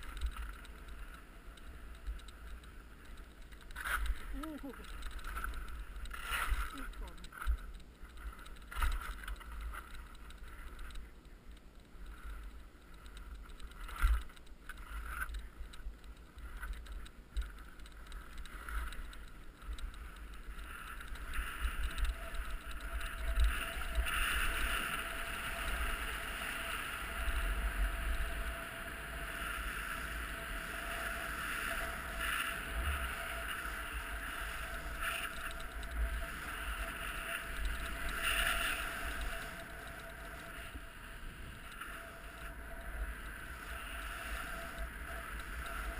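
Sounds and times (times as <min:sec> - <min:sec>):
skis scraping over hard snow: 0:19.6 - 0:45.9.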